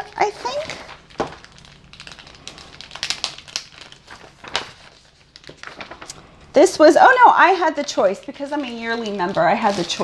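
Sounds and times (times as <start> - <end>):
plastic packaging crinkling: 0.0 - 10.0
paper pages being handled: 0.3 - 6.5, 7.8 - 10.0.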